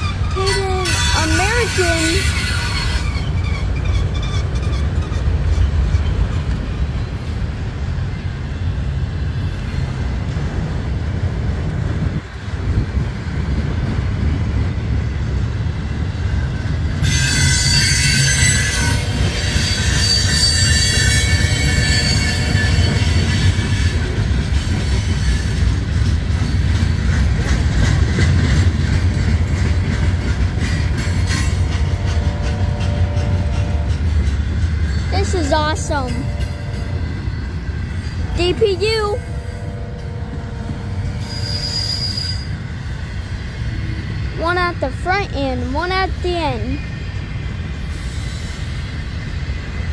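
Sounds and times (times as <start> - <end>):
high-pitched wheel squeal: 0.0 - 6.1, 17.0 - 24.0, 41.1 - 42.8
freight cars rumbling on rails: 0.0 - 49.9.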